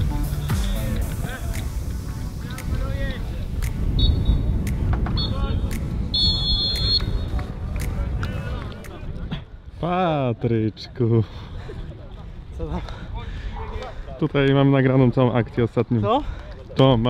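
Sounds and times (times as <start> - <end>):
wind rumble on microphone: 1.2 - 9.8
referee's whistle blasts: 5.2 - 5.5, 6.1 - 7.3.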